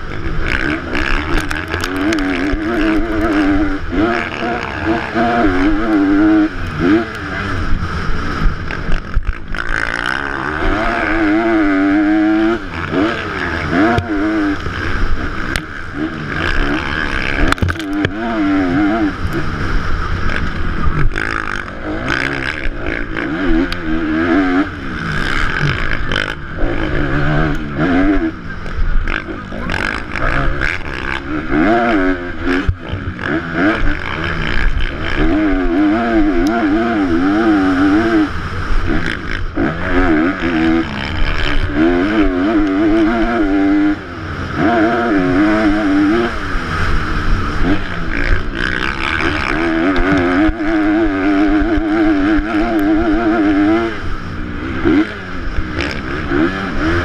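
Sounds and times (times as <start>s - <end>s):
motocross bike engine revving: 0.0s - 57.0s
wind rumble on camera: 0.0s - 57.0s.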